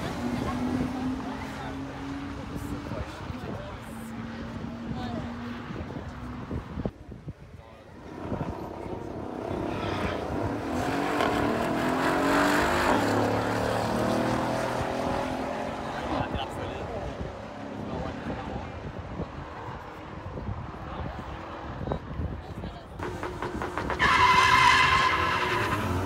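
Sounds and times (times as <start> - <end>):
drag racing cars accelerating: 0.0 - 6.9, 8.0 - 22.1, 23.0 - 26.0.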